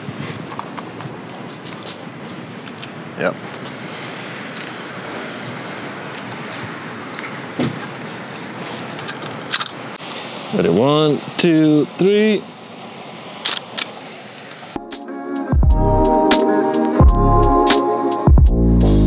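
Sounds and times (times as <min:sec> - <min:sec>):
distant traffic hiss: 0:00.0 - 0:15.5.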